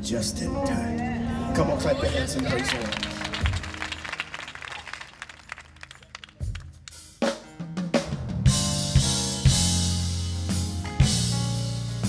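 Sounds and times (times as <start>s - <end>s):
gospel band playing: 0.0s - 12.0s
drum and cymbal hits: 6.4s - 12.0s.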